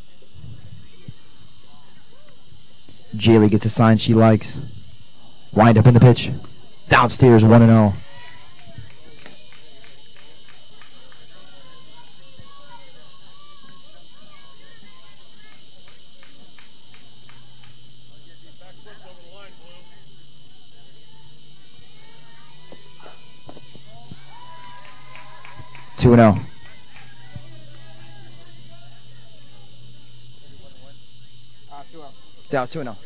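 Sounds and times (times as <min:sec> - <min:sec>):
distant voices: 0:00.0 - 0:33.0
high-pitched insect chorus: 0:00.0 - 0:33.0
low steady hum: 0:00.0 - 0:33.0.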